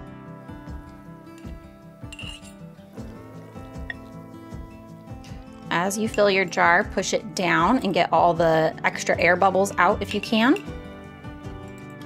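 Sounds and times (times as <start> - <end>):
background music: 0.0 - 12.0
fork clinking glass jar: 1.4 - 2.7, 6.0 - 6.4, 10.0 - 10.9.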